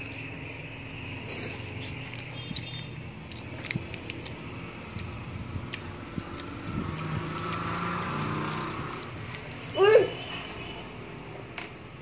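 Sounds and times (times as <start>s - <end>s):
plastic candy wrapper crinkling: 1.8s - 7.6s, 8.5s - 11.3s.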